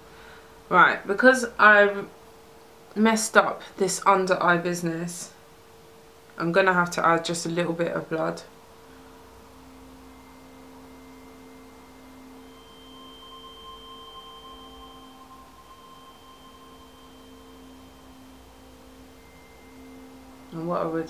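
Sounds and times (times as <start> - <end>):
faint steady hum: 0.0 - 21.0
low background noise: 0.0 - 21.0.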